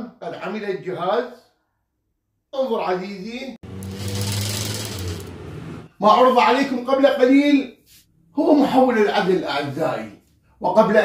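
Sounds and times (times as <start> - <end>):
electric motor humming and whirring: 3.6 - 5.8.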